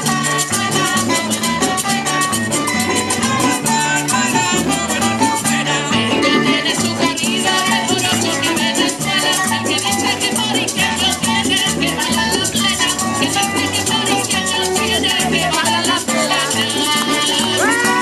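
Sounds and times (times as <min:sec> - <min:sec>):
conga drums: 0:00.0 - 0:18.0
guitars strummed and plucked: 0:00.0 - 0:18.0
rattling hand percussion: 0:00.0 - 0:18.0.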